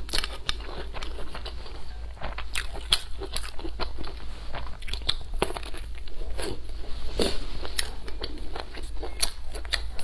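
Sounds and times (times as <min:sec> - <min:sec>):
wet chewing and crunching: 0:00.0 - 0:10.0.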